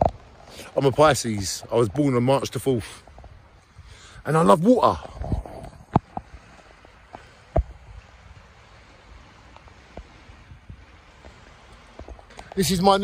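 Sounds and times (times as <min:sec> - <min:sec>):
river water rushing over rocks: 0:00.0 - 0:13.0.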